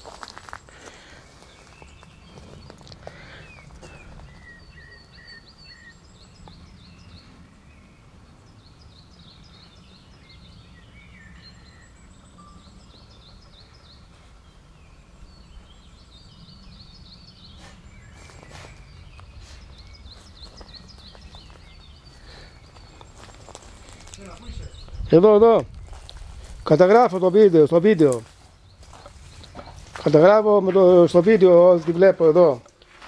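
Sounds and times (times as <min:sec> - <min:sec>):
songbirds singing: 0:00.0 - 0:33.0
wind rumble on microphone: 0:23.6 - 0:26.7.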